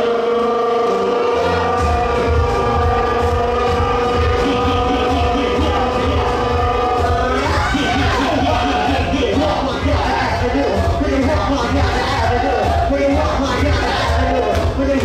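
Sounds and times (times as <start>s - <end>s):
loud dance music: 0.0s - 15.0s.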